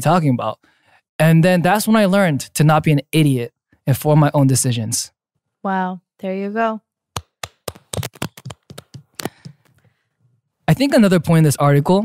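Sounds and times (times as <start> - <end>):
hands clapping: 7.2 - 9.8.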